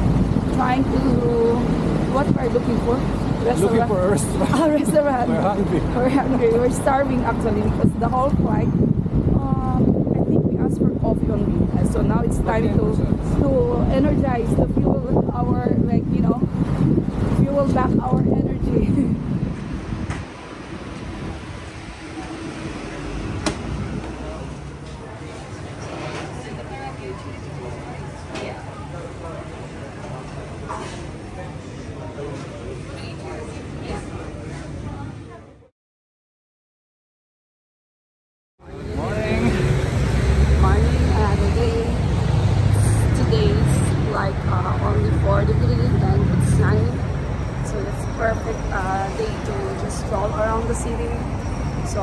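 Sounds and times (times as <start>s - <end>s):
wind buffeting microphone: 0.0s - 22.2s
city street traffic rumble: 0.0s - 35.7s, 38.6s - 52.0s
faint indistinct voices: 22.0s - 35.7s.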